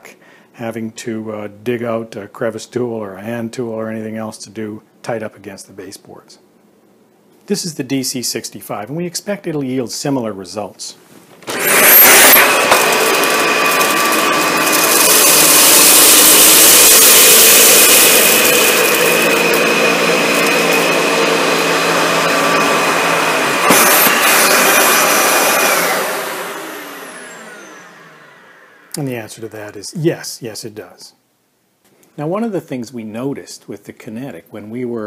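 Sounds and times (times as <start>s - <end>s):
vacuum cleaner running on carpet: 11.5s - 28.9s.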